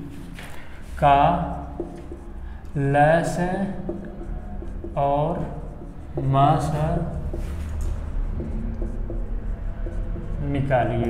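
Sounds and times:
marker writing on whiteboard: 0:00.0 - 0:11.0
steady low hum: 0:00.0 - 0:11.0.

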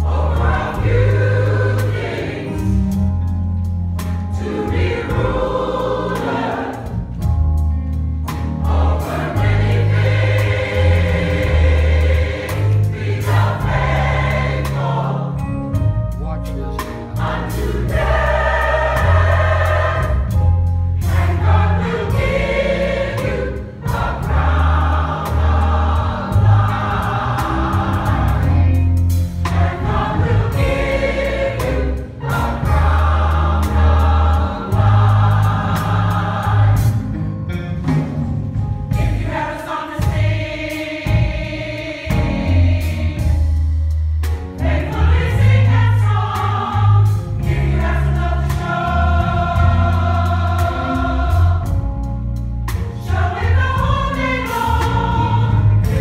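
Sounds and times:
gospel choir singing: 0:00.0 - 0:07.6, 0:08.2 - 0:16.0, 0:16.8 - 0:56.0
instrumental accompaniment with bass: 0:00.0 - 0:56.0.

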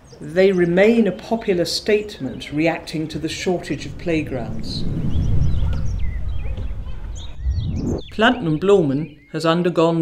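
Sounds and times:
small birds chirping: 0:00.0 - 0:10.0
low outdoor rumble: 0:02.4 - 0:08.3.

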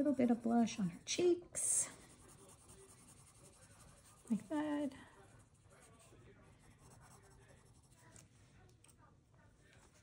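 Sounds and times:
pencil scratching on paper: 0:01.9 - 0:08.2.

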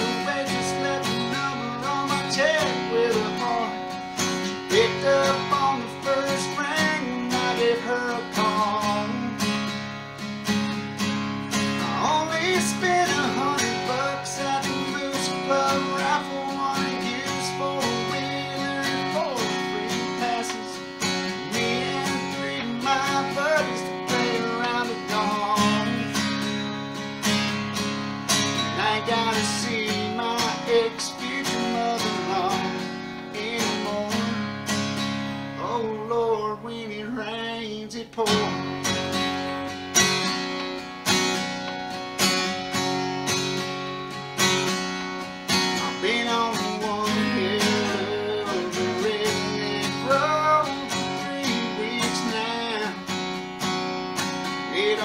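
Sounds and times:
man singing: 0:00.0 - 0:09.7, 0:11.7 - 0:26.7, 0:28.4 - 0:34.8, 0:35.5 - 0:39.2, 0:45.5 - 0:53.2, 0:54.5 - 0:55.0
acoustic guitar strumming: 0:00.0 - 0:55.0.

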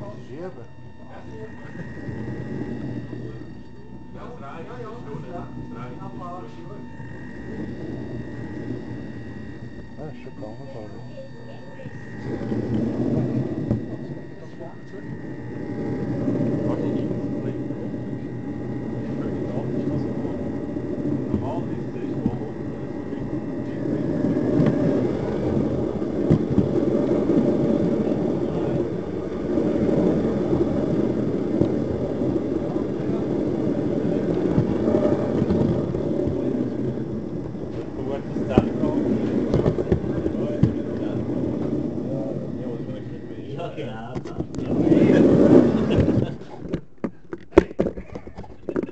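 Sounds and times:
model train motor humming: 0:00.0 - 0:46.8.

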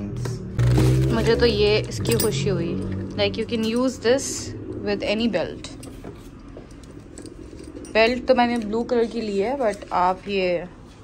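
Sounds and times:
metal belt buckle clinking: 0:02.0 - 0:04.2, 0:05.6 - 0:10.2.

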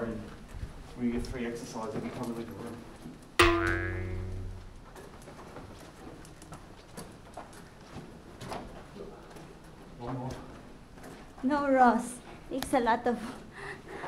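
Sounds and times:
bright musical note: 0:03.4 - 0:04.7.

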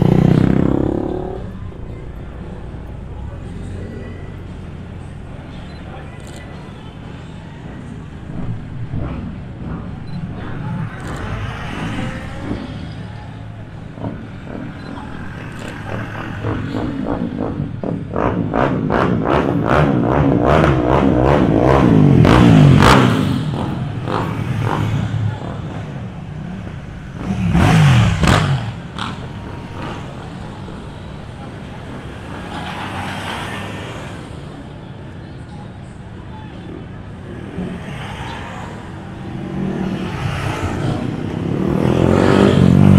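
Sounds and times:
motorcycle pulsing exhaust: 0:00.0 - 0:05.6, 0:07.1 - 0:32.6
faint crowd voices: 0:00.0 - 0:42.9
motorcade engines driving past: 0:00.0 - 0:42.9.

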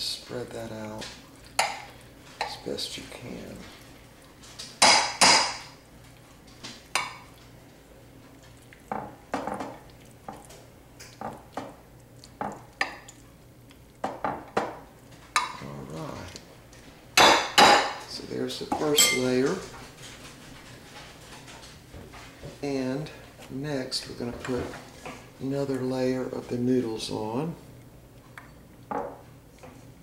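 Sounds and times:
metal utensils clinking on glass: 0:18.9 - 0:19.5.

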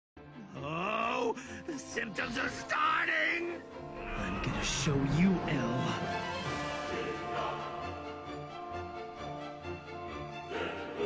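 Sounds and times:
background music: 0:00.2 - 0:11.0
person speaking: 0:00.8 - 0:06.2.

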